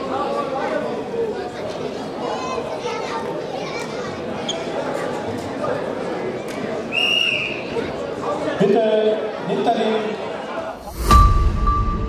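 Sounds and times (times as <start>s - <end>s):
many voices chattering: 0.0s - 11.1s.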